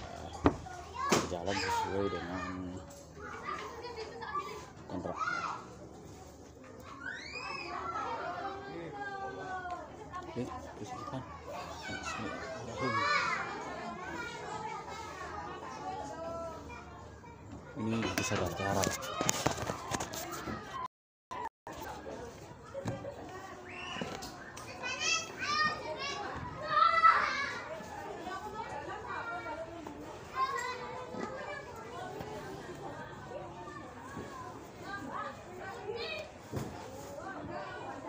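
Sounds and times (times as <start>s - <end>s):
children playing and calling out: 0.0s - 38.0s.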